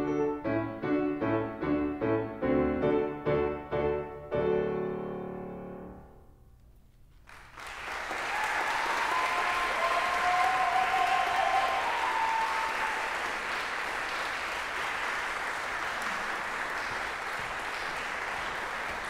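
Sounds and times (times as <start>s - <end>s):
audience applauding: 7.2s - 19.0s.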